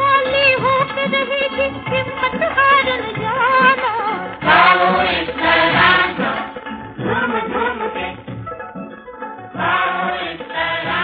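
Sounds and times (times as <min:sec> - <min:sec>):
voices singing together: 0:04.2 - 0:08.4, 0:09.5 - 0:11.0.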